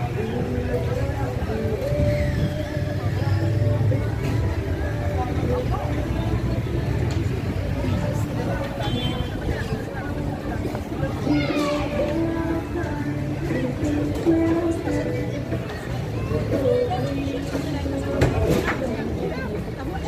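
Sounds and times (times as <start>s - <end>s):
people talking: 0.0s - 20.0s
road traffic rumble: 0.0s - 20.0s.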